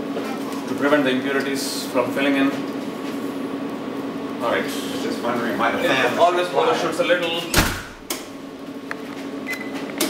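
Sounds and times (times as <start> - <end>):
low hum of lab equipment: 0.0 - 10.0.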